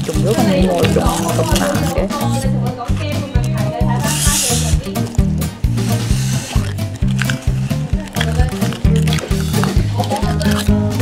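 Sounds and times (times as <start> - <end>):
music with bouncing bass line: 0.0 - 11.0.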